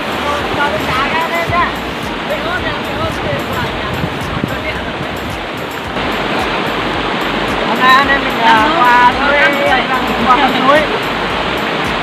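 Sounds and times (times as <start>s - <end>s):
stream rushing over rocks: 0.0s - 12.0s.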